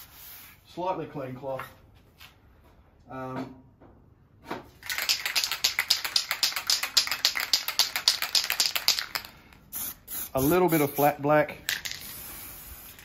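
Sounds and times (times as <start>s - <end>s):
spray can ball rattling: 4.8s - 13.0s
spray hissing: 9.7s - 11.1s, 12.0s - 13.0s.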